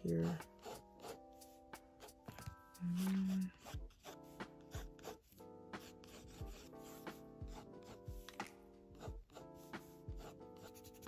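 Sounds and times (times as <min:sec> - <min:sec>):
pencil scratching on paper: 0:00.0 - 0:11.0
soft background music: 0:00.0 - 0:11.0.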